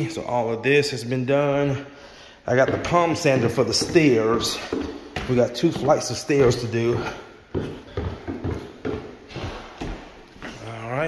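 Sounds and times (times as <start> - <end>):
footsteps on hardwood floor: 2.4 - 10.7.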